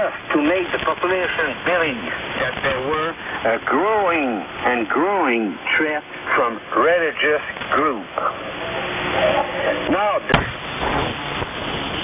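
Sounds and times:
sharp static crash: 0:00.0 - 0:04.6, 0:09.9 - 0:12.0
radio band noise hiss: 0:00.0 - 0:12.0.

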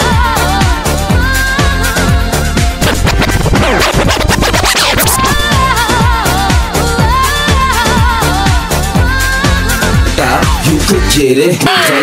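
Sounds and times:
hip hop music: 0:00.0 - 0:12.0
record scratching: 0:02.7 - 0:05.8.

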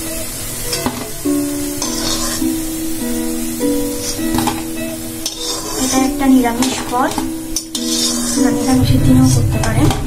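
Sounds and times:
background music with held notes: 0:00.0 - 0:10.0
oil sizzling: 0:00.0 - 0:10.0
metal spatula scraping pan: 0:00.6 - 0:10.0.

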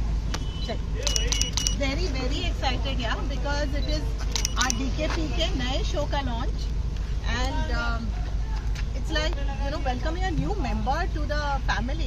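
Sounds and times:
low street rumble: 0:00.0 - 0:12.0
light metallic clinks: 0:01.0 - 0:01.8, 0:04.3 - 0:04.9.

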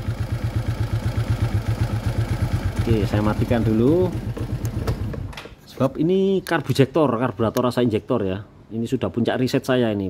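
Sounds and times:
scooter engine idling: 0:00.0 - 0:05.3.

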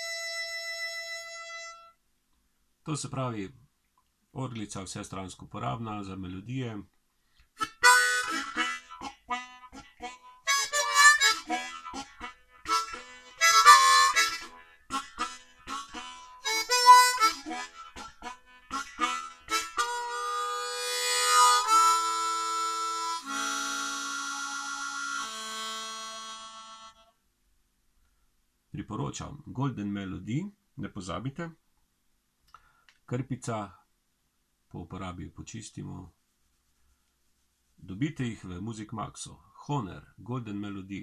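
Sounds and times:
harmonica playing: 0:00.0 - 0:02.0, 0:07.6 - 0:27.2.

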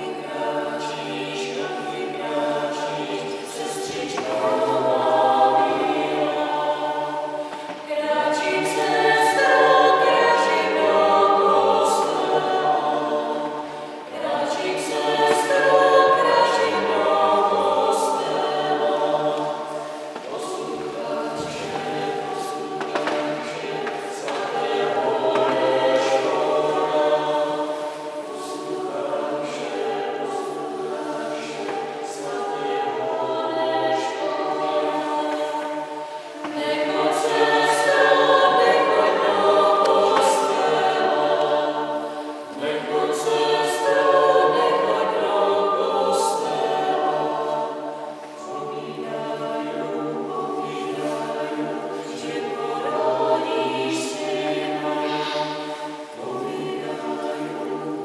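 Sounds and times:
vocal ensemble singing unaccompanied: 0:00.0 - 0:58.0.

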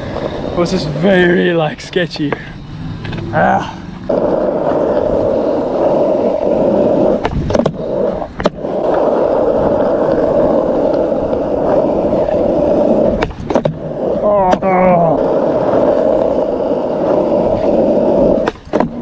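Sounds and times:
skateboard wheels rolling on asphalt: 0:00.0 - 0:19.0
skateboard clicks and knocks: 0:04.1 - 0:19.0.

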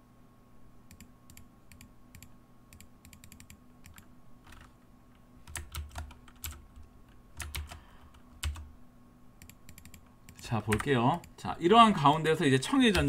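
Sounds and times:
computer keyboard keystrokes: 0:00.9 - 0:04.7, 0:05.4 - 0:08.7, 0:09.4 - 0:11.3.

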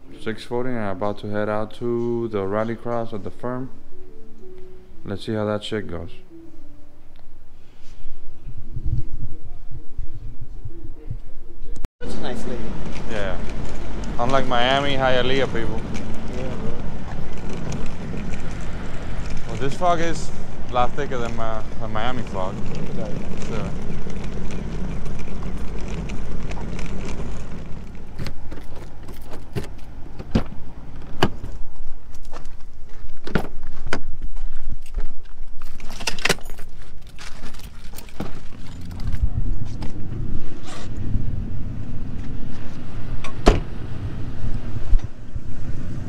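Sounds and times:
low vehicle rumble: 0:12.0 - 0:32.7, 0:37.1 - 0:46.0
handling clicks and knocks: 0:12.7 - 0:40.0
keys jangling: 0:34.8 - 0:39.2.

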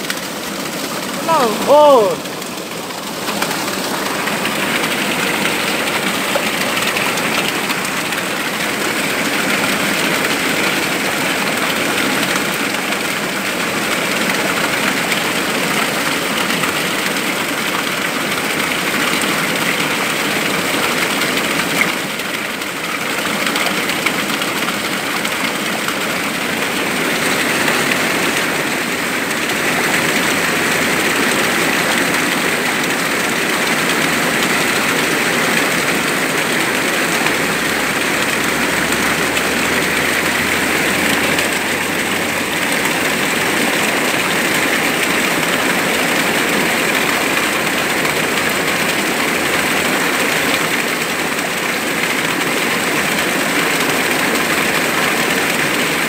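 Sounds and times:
waterfall splashing onto rocks: 0:00.0 - 0:56.0.

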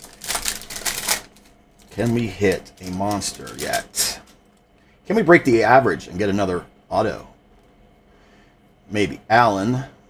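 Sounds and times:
foil wrapper crinkling and tearing: 0:00.0 - 0:04.3.

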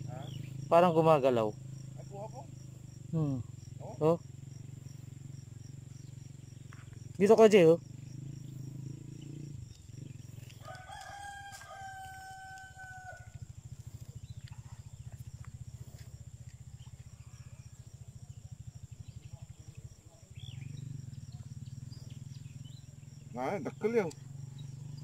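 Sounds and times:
rooster crowing: 0:10.6 - 0:13.6.

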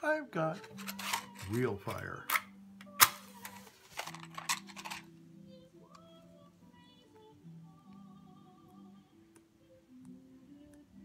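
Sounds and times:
match struck and hissing: 0:03.0 - 0:04.0.

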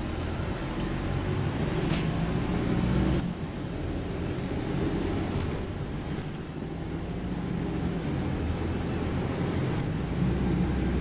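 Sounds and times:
bus engine pulling: 0:00.0 - 0:11.0
road noise: 0:00.0 - 0:11.0.

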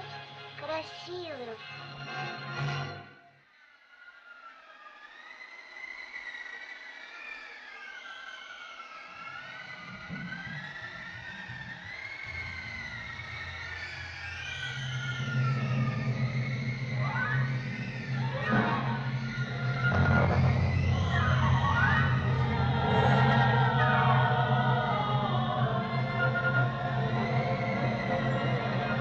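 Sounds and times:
low sustained notes: 0:11.8 - 0:29.0.

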